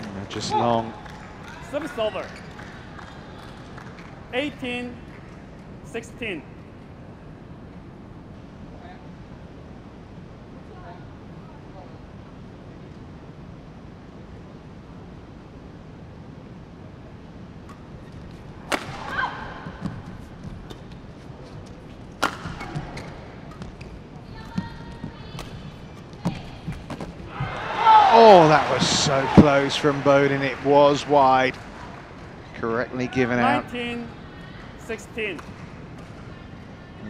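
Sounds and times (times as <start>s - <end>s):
low hall murmur: 0.0s - 37.0s
racket striking shuttlecock: 18.6s - 20.0s, 22.2s - 24.0s
crowd shouting: 27.3s - 29.8s.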